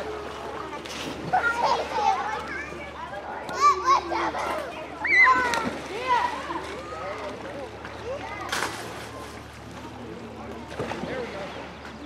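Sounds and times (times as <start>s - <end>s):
children shouting: 1.3s - 7.3s.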